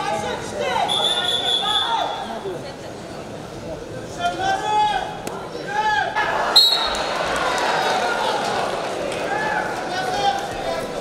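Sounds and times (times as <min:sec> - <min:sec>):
crowd noise in arena: 0:00.0 - 0:11.0
referee whistle blast: 0:00.9 - 0:02.0, 0:06.6 - 0:07.1.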